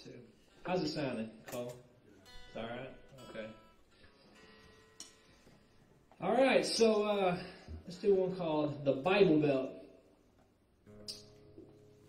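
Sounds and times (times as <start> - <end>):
guitar strings ringing: 1.4 - 6.2, 10.9 - 12.0
person speaking: 6.2 - 10.0.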